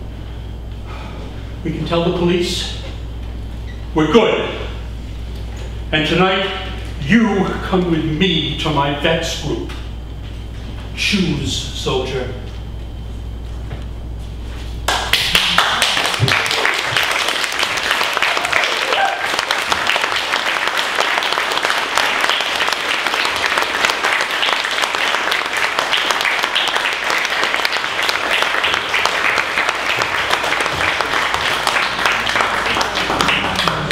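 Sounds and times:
audience applauding: 0:14.9 - 0:33.9.

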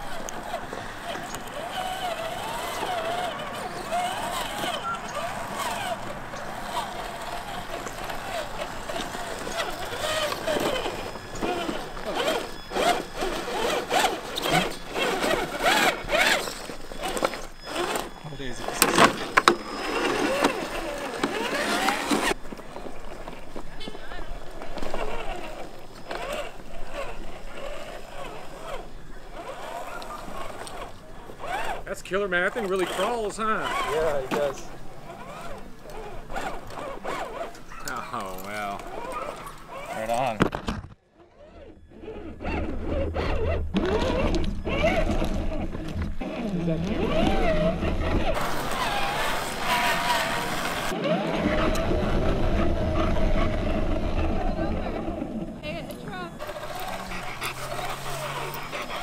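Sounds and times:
people talking outdoors: 0:00.0 - 0:40.7, 0:53.0 - 0:59.0.

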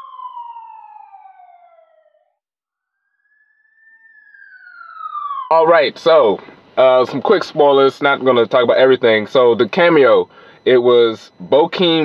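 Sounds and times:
siren wailing: 0:00.0 - 0:02.4, 0:03.0 - 0:12.0.

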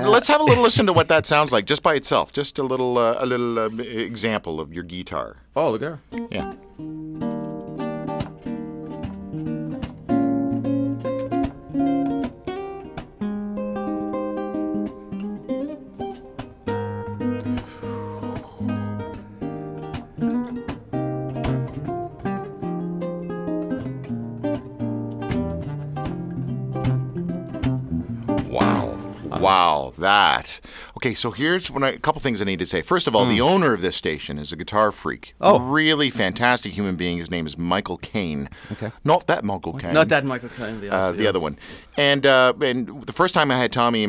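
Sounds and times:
nylon-string guitar playing: 0:00.0 - 0:01.5, 0:06.1 - 0:30.3.

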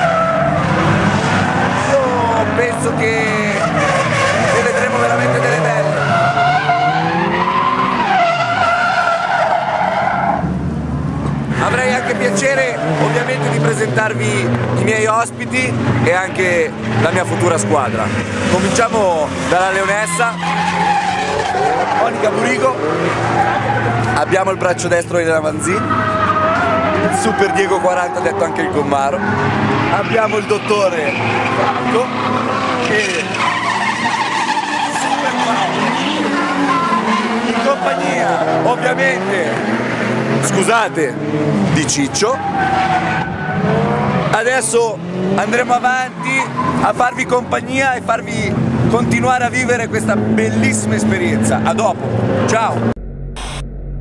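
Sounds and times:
tyres squealing: 0:00.0 - 0:10.4, 0:16.0 - 0:47.9
engines revving at high rpm: 0:00.0 - 0:53.6
nearby voices: 0:01.8 - 0:06.2.

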